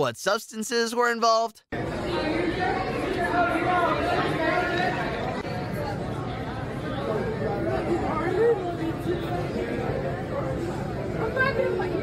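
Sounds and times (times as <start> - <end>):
overlapping chatter of people: 1.7 - 12.0.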